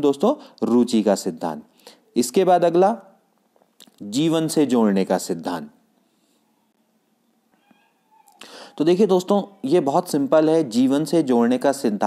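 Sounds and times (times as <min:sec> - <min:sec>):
faint high-pitched animal call: 0:06.4 - 0:06.8, 0:07.5 - 0:10.2.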